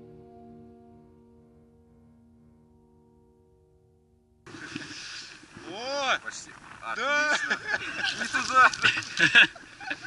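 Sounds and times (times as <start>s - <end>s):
background music: 0.0s - 4.4s
wind and snow on microphone: 4.5s - 10.0s
person calling out: 6.8s - 7.4s.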